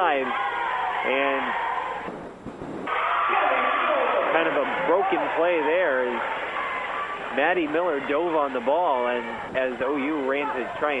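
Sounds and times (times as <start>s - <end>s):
faint gym background noise: 0.0s - 11.0s.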